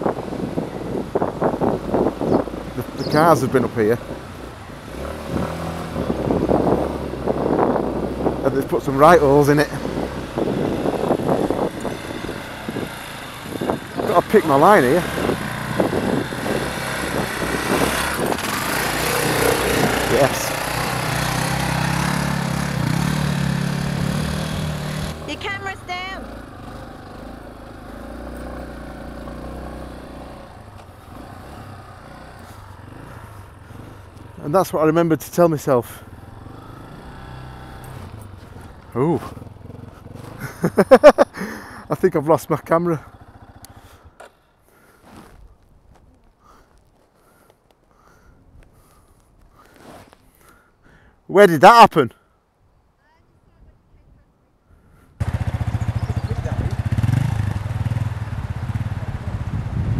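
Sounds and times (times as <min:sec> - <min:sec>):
motorcycle engine running at low revs: 0:00.0 - 0:25.4, 0:26.1 - 0:34.4, 0:36.0 - 0:41.2, 0:42.9 - 0:44.2, 0:55.2 - 0:59.9.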